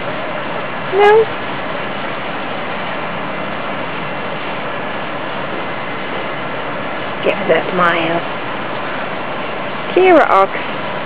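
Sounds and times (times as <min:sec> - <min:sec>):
steady rushing noise: 0:00.0 - 0:11.0.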